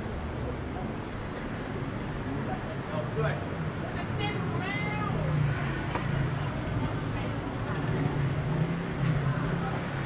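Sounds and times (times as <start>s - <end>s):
traffic engine hum: 0.0s - 10.0s.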